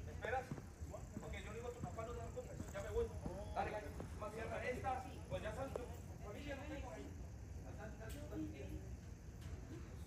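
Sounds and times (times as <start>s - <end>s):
distant indistinct voices: 0.0s - 10.0s.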